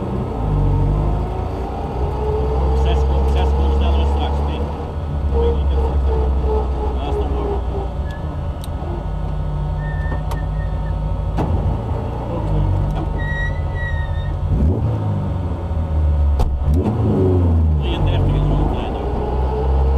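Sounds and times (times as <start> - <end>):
car engine revving through gear changes: 14.4 - 19.9.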